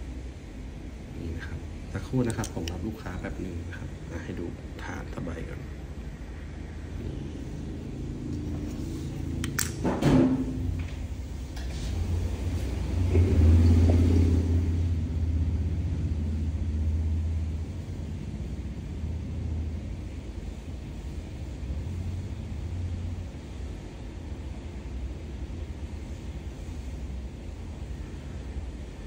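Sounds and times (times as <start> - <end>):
low steady rumble: 0.0 - 29.0.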